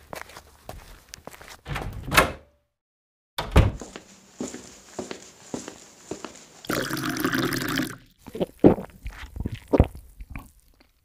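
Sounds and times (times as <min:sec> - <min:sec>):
liquid pouring: 0:06.7 - 0:08.2.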